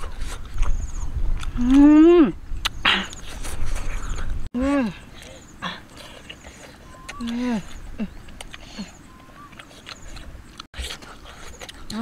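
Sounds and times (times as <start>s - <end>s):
woman humming mmm: 1.5s - 3.1s, 4.6s - 5.8s.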